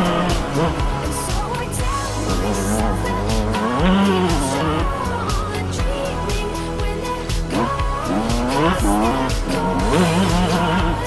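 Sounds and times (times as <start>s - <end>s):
motocross engine revving: 0.0s - 11.0s
music with steady beat: 0.0s - 11.0s.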